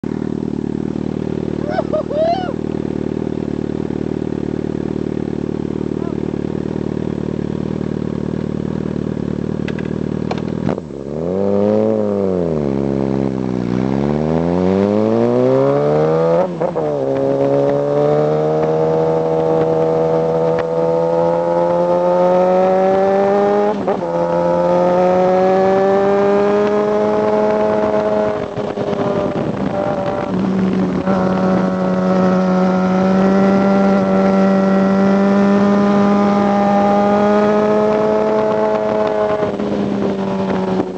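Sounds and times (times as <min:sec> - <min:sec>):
motorcycle engine revving: 0:00.0 - 0:40.9
gear change: 0:14.6 - 0:40.9
wind noise: 0:22.8 - 0:40.9.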